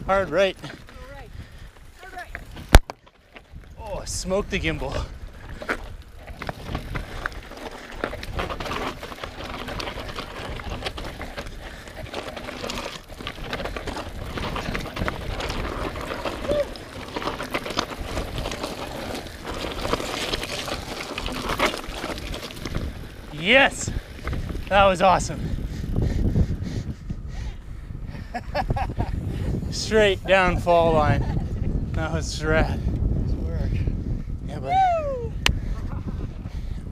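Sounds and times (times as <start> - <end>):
bike tyres rumbling over dirt: 0.0 - 36.9
bike rattling and knocking: 0.1 - 26.8.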